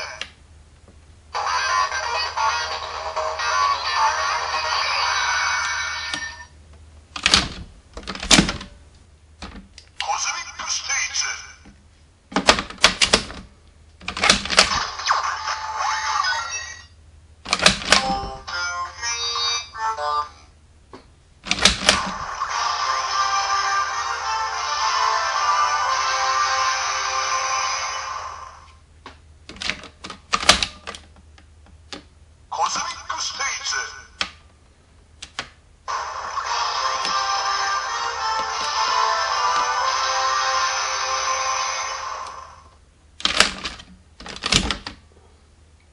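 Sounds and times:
electronic toy voice and effect: 0.0s - 0.2s, 1.3s - 6.5s, 10.0s - 11.6s, 14.7s - 17.0s, 18.0s - 20.5s, 22.0s - 28.7s, 32.5s - 34.2s, 35.9s - 42.7s.

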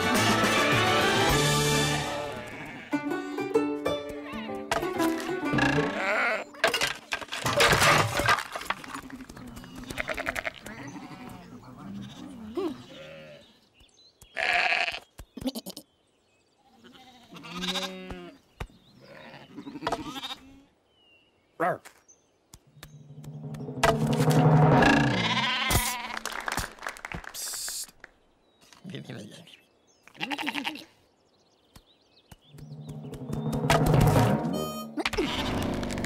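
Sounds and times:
background music: 0.0s - 7.2s, 23.0s - 25.4s, 32.6s - 36.0s
cartoon sheep bleating: 5.5s - 6.6s, 14.4s - 15.8s, 16.8s - 18.4s, 25.0s - 26.2s, 30.1s - 30.9s
noisy sound effects: 23.0s - 25.6s, 32.6s - 36.0s.

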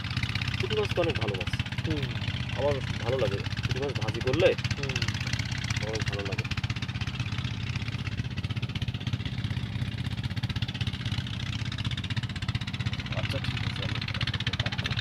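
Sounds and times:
small engine chugging: 0.0s - 15.0s.

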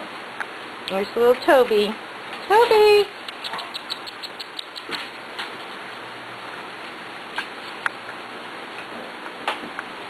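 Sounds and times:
puppies scuffling clicks and scratches: 3.2s - 6.0s.

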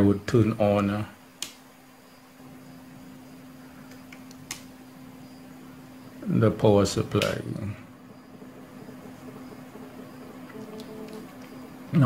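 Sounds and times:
faint room hiss: 0.0s - 12.0s
steady low hum: 0.0s - 12.0s
sharp click: 1.4s - 1.6s, 3.9s - 4.7s, 7.2s - 7.4s.

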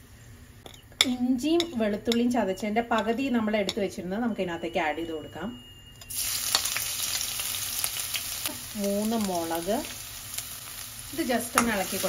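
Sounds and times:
spices sizzling in hot oil: 6.1s - 12.0s.

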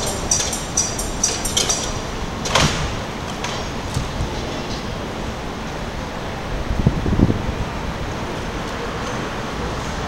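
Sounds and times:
high metallic clinks: 0.0s - 2.2s
city background noise: 0.0s - 10.0s.

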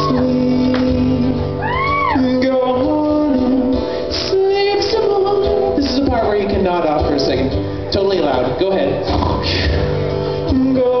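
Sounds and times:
strummed acoustic guitar: 0.0s - 1.6s, 2.2s - 11.0s
man singing into a microphone: 0.0s - 11.0s.

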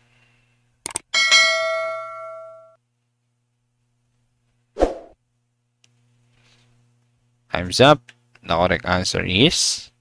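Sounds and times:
bright bell ding: 1.2s - 2.8s.

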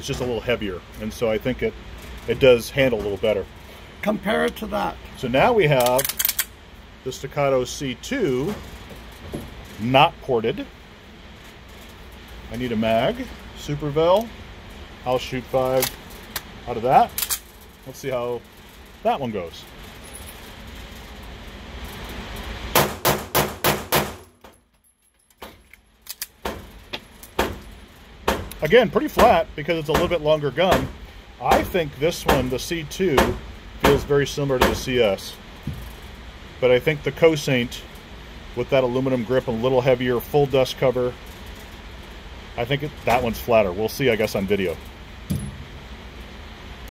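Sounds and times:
background hum: 0.0s - 46.9s
rapid pistol shots indoors: 22.8s - 24.4s
short low thud: 45.3s - 45.8s.

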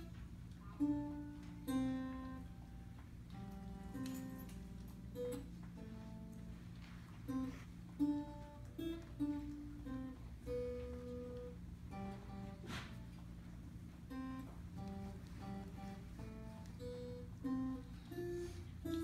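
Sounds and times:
acoustic guitar melody: 0.0s - 19.0s.

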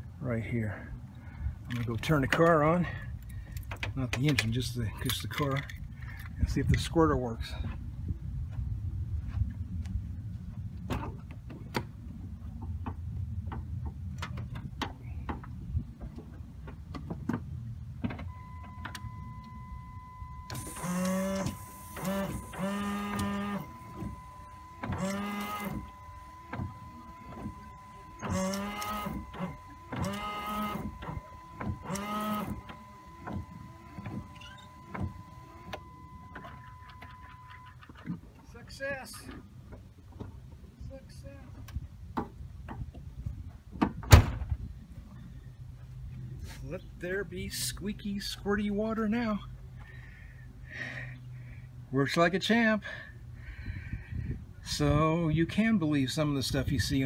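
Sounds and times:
electronic warning tone: 18.3s - 37.8s
washer and wiper motor: 20.5s - 37.7s.

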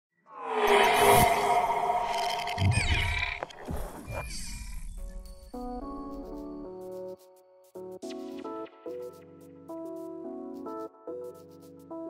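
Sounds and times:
electronic swooshing sweeps: 0.3s - 3.7s
sharp hit: 0.4s - 3.6s.

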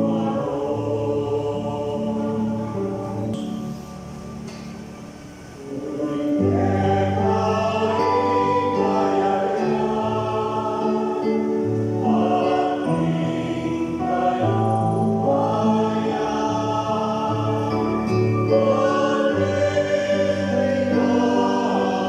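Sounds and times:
mixed choir singing: 0.0s - 4.0s, 5.5s - 22.0s.

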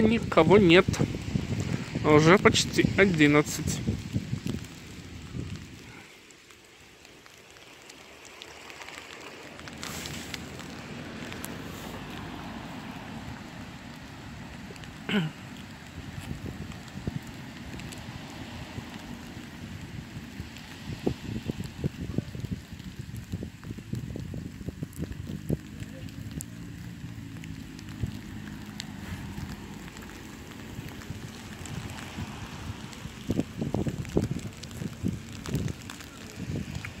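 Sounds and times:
wind buffeting microphone: 0.0s - 6.0s, 15.6s - 37.0s
street ambience: 0.0s - 37.0s
passing vehicle engine hum: 8.9s - 21.5s, 25.0s - 36.8s.

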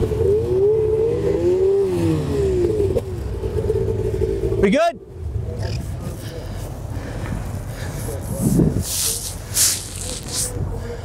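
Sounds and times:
short bursts of hiss: 8.8s - 10.5s.

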